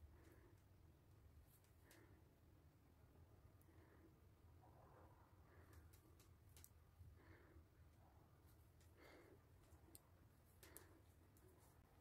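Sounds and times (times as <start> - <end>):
knitting needles clicking: 5.7 - 6.8, 9.6 - 11.8.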